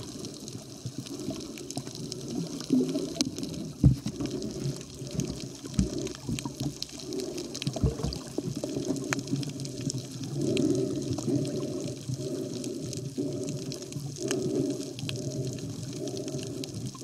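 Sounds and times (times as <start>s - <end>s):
muffled water sloshing underwater: 0.0s - 17.0s.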